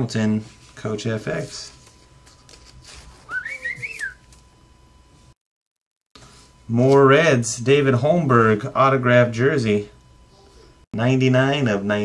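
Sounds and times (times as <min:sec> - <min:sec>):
man whistling: 0:03.2 - 0:04.2.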